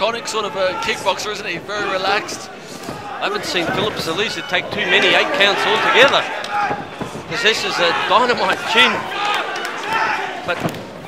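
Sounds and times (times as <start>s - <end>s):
man commentating: 0.0s - 9.2s.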